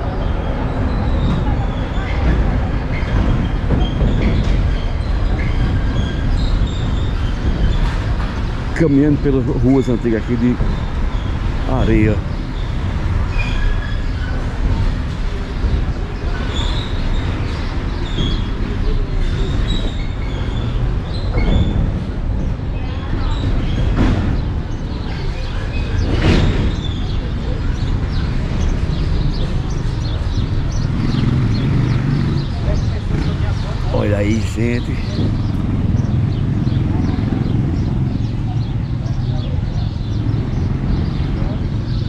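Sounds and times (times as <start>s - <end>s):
faint voices of people: 0.0s - 10.8s, 13.2s - 42.0s.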